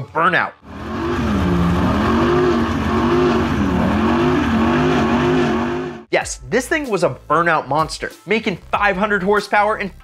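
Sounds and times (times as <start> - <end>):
engine revving during burnout: 0.6 - 6.1
tyres spinning: 0.7 - 6.1.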